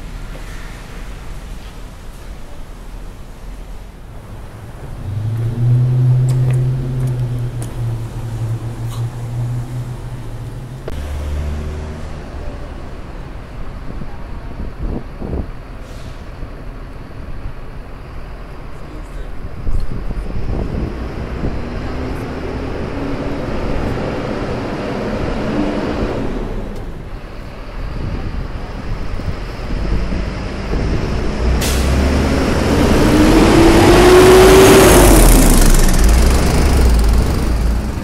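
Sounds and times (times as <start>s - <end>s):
vehicles passing with low rumble: 0.0s - 38.0s.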